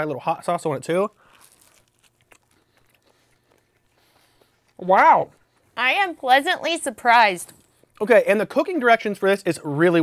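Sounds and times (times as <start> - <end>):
people chewing toast: 0.9 - 5.8.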